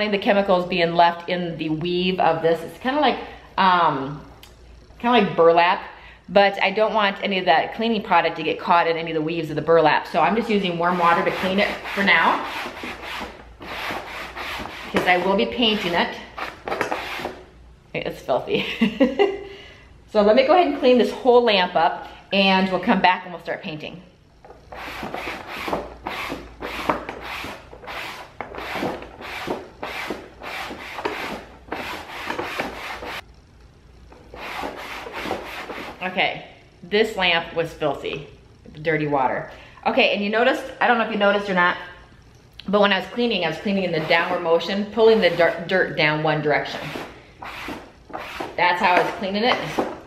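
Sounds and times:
sponge scrubbing lampshade: 0:10.2 - 0:17.4, 0:24.6 - 0:33.2, 0:34.2 - 0:36.1, 0:43.4 - 0:45.7, 0:46.6 - 0:50.0
damp sponge wiping lampshade: 0:10.8 - 0:17.4, 0:34.3 - 0:36.0.

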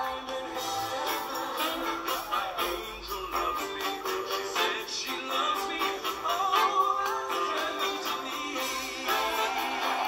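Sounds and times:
pop song through laptop speakers: 0:00.0 - 0:10.0.

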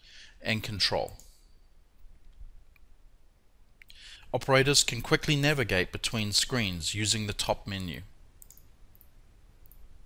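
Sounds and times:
computer mouse clicks: 0:08.4 - 0:09.8.

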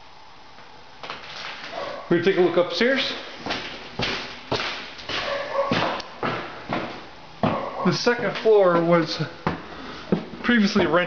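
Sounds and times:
footsteps on wooden stairs: 0:03.2 - 0:10.9.

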